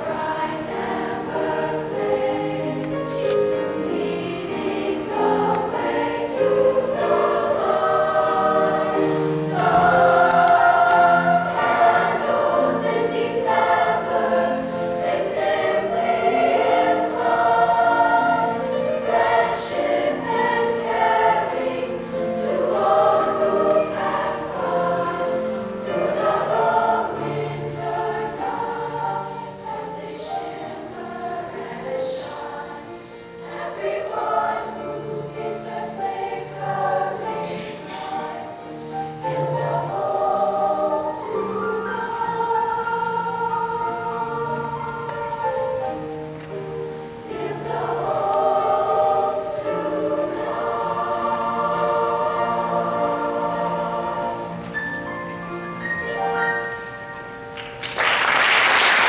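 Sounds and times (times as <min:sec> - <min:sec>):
girls' choir singing: 0:00.0 - 0:59.0.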